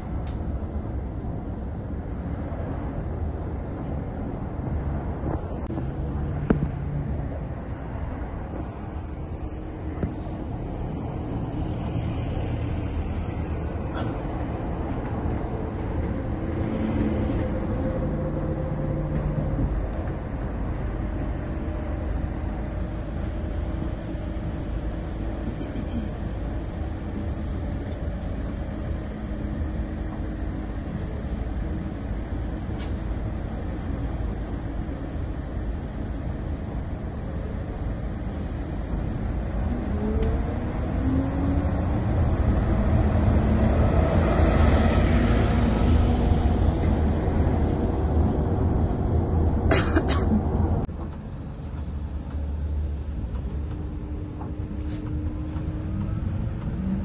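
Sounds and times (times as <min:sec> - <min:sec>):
bus engine rumble: 0:00.0 - 0:57.0
road noise: 0:00.0 - 0:57.0.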